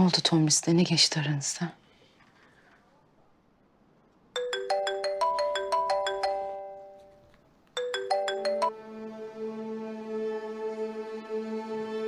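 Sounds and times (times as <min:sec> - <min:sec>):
phone ringtone melody: 0:04.4 - 0:08.8.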